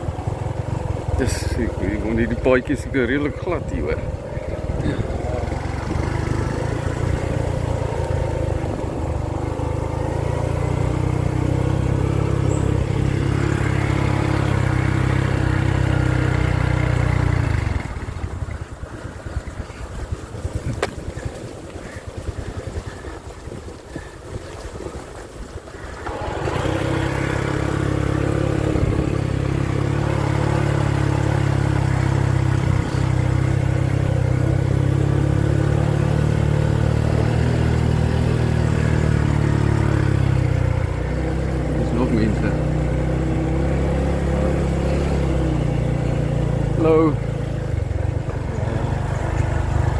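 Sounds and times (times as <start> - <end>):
motor scooter engine running: 0.0 - 49.9.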